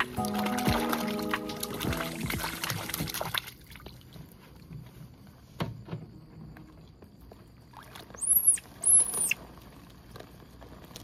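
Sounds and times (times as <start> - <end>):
high-pitched animal squeals: 8.2 - 9.4.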